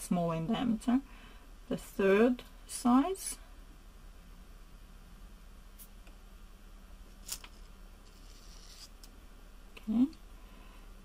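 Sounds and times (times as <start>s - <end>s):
leather strip scraping through metal: 7.2s - 9.0s.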